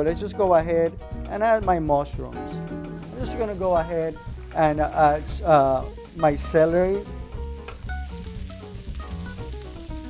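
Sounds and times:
soft background music: 0.0 - 10.0
vegetables sizzling in a frying pan: 2.8 - 10.0.

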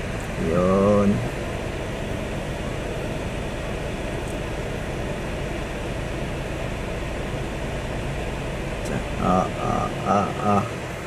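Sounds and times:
car air-conditioning blower hum: 0.0 - 11.0.

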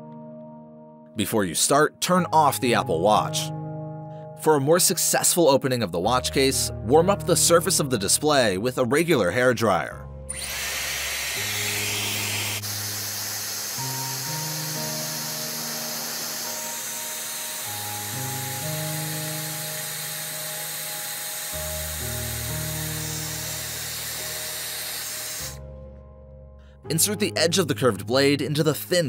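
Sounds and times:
background music sustained notes: 0.0 - 29.0
hairdryer blowing: 10.3 - 25.6.

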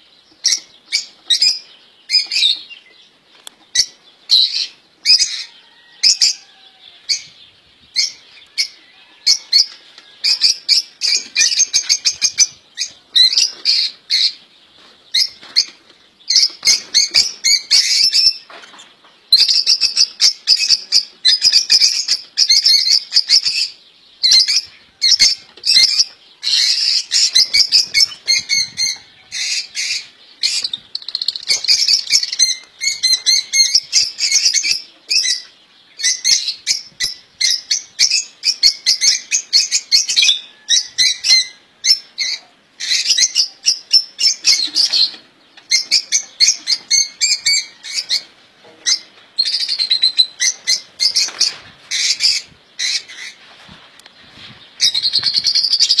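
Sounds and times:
songbirds chirping: 0.0 - 56.0.

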